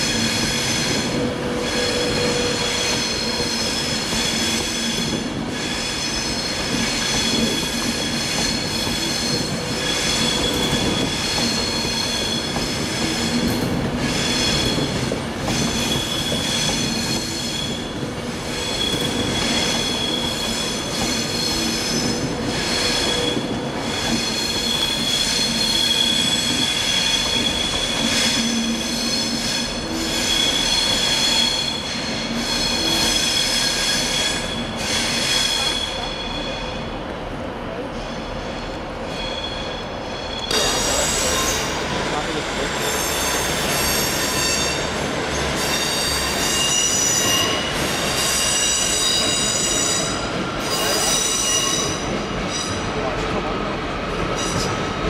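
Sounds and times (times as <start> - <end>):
train wheels squealing: 0.0 - 36.9, 38.0 - 53.5, 54.3 - 55.0
train rumble: 0.0 - 55.0.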